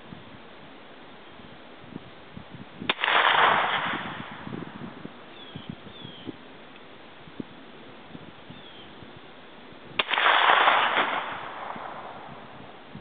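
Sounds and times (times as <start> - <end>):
gunshot: 2.9 - 4.4, 10.0 - 12.3.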